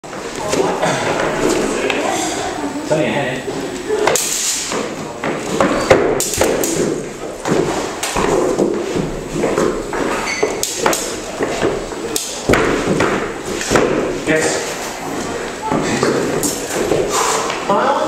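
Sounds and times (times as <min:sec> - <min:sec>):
feet thumping on wooden floor: 0:03.5 - 0:14.4, 0:15.0 - 0:17.7.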